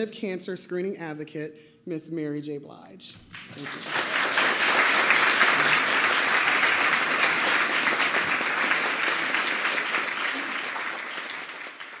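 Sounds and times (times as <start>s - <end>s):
audience applauding: 3.3s - 12.0s.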